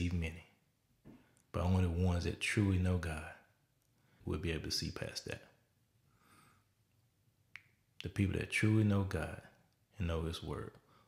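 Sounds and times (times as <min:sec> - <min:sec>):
faint breath in: 0:06.0 - 0:06.8.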